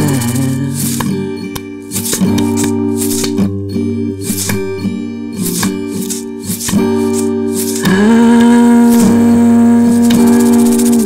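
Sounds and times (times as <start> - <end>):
musical accompaniment: 0.0 - 11.0
person singing a long note: 7.8 - 11.0.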